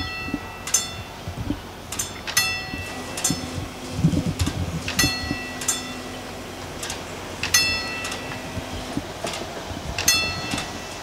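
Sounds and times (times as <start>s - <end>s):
level crossing warning bell: 0.0s - 1.2s, 2.0s - 3.6s, 4.9s - 6.8s, 7.4s - 8.6s, 10.0s - 11.0s
low motor hum: 0.0s - 11.0s.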